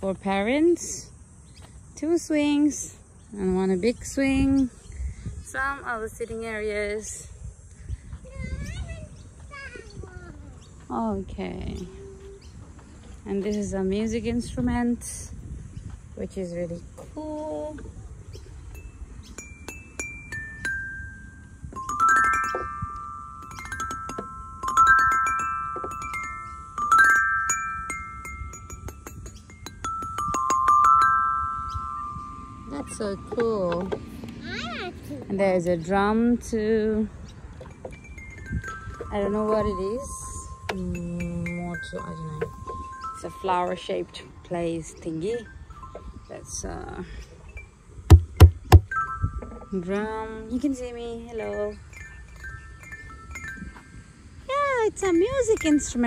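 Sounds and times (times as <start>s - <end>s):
deep drum hits: 48.1s - 49.0s.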